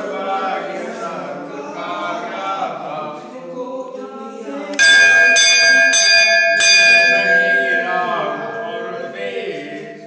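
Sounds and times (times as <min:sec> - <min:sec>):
temple bell ringing: 0:04.8 - 0:10.0.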